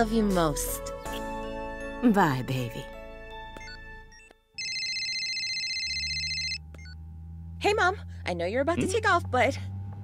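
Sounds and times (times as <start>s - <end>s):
soft background music: 0.0s - 4.3s
phone ringtone: 3.6s - 7.0s.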